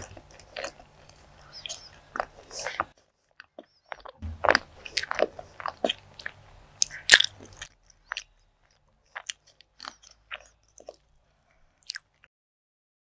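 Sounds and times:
chewing food with wet clicks: 0:00.0 - 0:11.2, 0:11.8 - 0:12.3.

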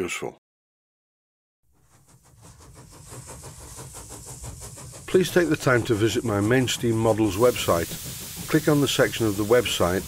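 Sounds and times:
steam hiss: 0:01.8 - 0:10.0.

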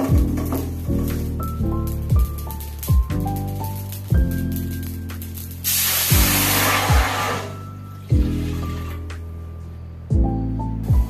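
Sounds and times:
water hissing in hot pan: 0:00.0 - 0:08.9
background music with steady beat: 0:00.0 - 0:11.0.

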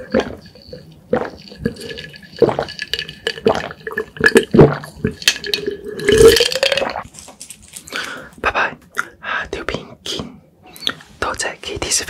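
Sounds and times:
soft mouth sounds: 0:00.0 - 0:07.0, 0:07.9 - 0:12.0
person gulping water: 0:00.0 - 0:07.1
loud burp: 0:03.4 - 0:07.0.

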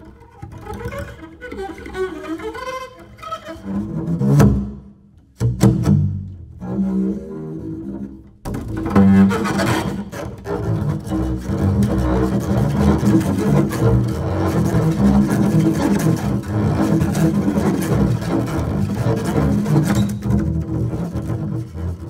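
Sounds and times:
bowed double bass scratchy strokes: 0:00.0 - 0:22.0.

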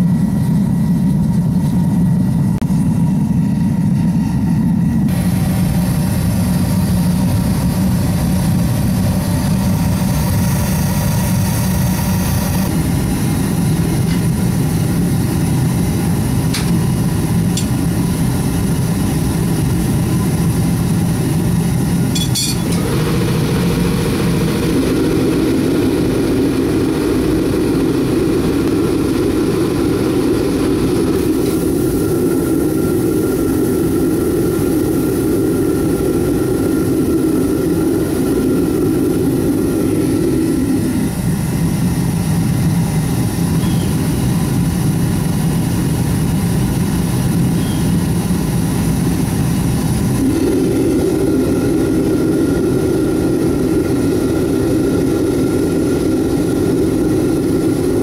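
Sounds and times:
furnace burner roaring: 0:00.0 - 0:58.0.

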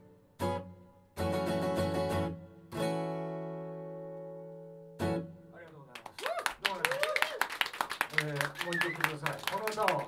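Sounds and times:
audience clapping: 0:05.6 - 0:10.0.

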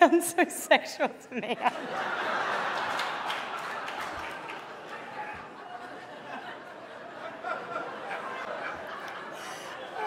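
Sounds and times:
audience laughter: 0:01.4 - 0:10.0.

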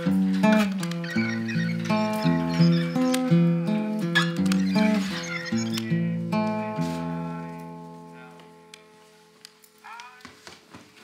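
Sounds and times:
plucked guitar melody: 0:00.0 - 0:08.8.

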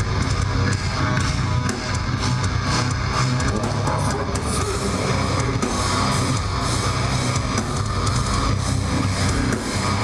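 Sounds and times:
distorted electric guitars: 0:00.0 - 0:10.0
drum kit: 0:00.0 - 0:10.0.

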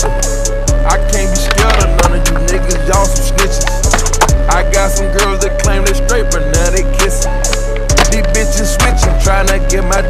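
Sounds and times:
hip hop music with steady beat: 0:00.0 - 0:10.0.

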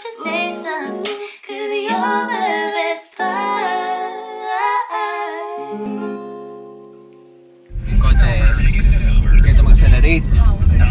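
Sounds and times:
women singing: 0:00.0 - 0:06.2.

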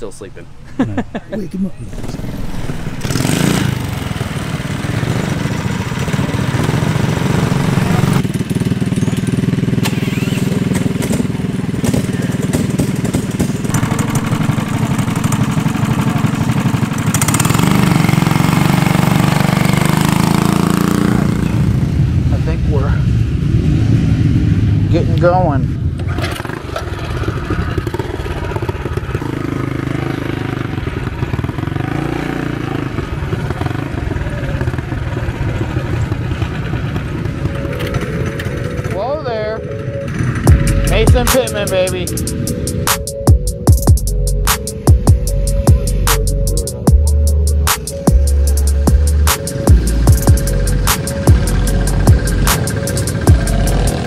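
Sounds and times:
voices: 0:00.0 - 0:02.2, 0:33.1 - 0:43.1, 0:45.7 - 0:54.0
small engine revving: 0:01.8 - 0:21.7, 0:47.0 - 0:54.0.

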